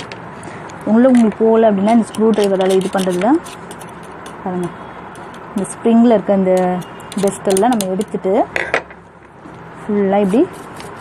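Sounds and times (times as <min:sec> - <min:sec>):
person talking: 0:00.8 - 0:03.4, 0:04.4 - 0:04.7, 0:05.6 - 0:08.6, 0:09.8 - 0:10.6.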